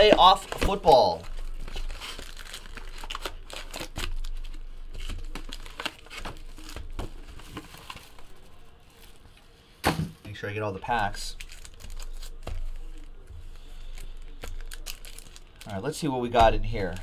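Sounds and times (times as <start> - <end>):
foil packs crinkling: 0.0 - 9.3, 11.1 - 16.1.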